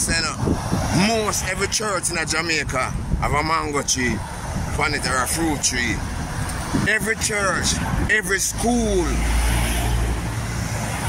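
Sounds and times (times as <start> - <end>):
traffic noise: 0.0 - 11.0.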